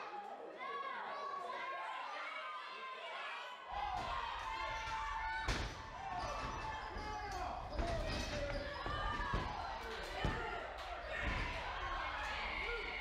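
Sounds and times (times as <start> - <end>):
people shouting: 0.0 - 13.0.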